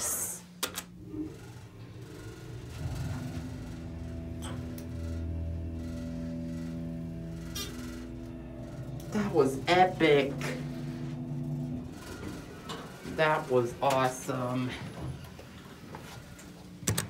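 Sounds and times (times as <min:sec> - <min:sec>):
elevator pump motor hum: 0:00.0 - 0:17.0.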